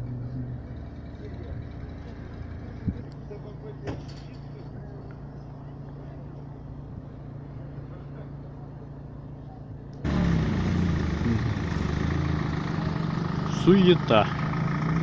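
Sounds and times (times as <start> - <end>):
car engine running: 0.0 - 15.0.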